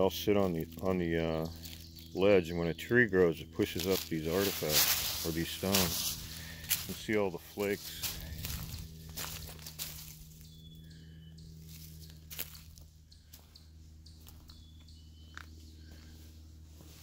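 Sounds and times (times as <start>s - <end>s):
faint low hum: 0.0s - 17.0s
footsteps on dry leaves: 0.2s - 2.4s, 3.1s - 17.0s.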